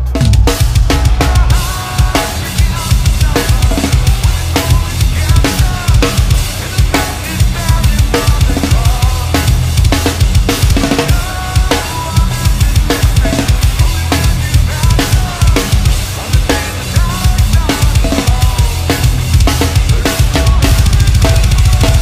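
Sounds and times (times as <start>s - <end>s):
heavy metal band playing: 0.0s - 22.0s
heavy metal drumming: 0.0s - 22.0s.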